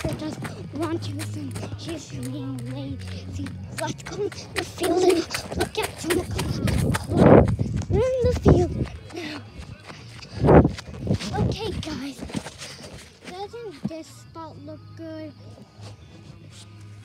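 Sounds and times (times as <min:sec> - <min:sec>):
young child's voice: 0:00.0 - 0:09.2, 0:11.2 - 0:12.5, 0:13.2 - 0:15.4.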